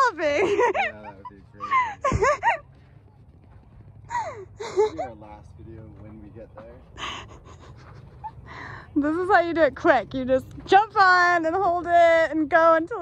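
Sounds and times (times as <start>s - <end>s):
women talking and laughing: 0.0s - 2.9s, 4.0s - 5.2s, 7.0s - 13.0s.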